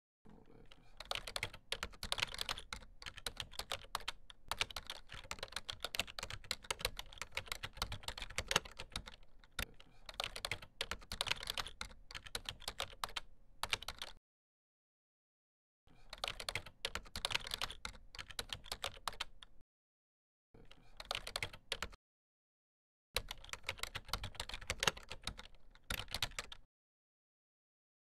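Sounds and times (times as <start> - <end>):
rapid keyboard typing: 0.7 - 14.2, 16.1 - 19.5, 21.0 - 22.0, 23.2 - 26.7.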